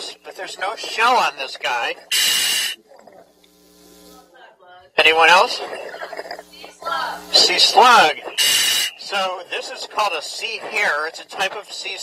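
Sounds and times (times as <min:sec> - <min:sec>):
faint hum: 0:00.0 - 0:12.0
scuba regulator hissing: 0:00.8 - 0:03.2, 0:05.3 - 0:09.3.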